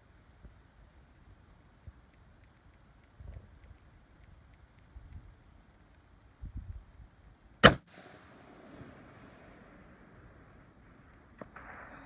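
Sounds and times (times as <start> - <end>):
rifle shot with echo: 7.6 - 12.0.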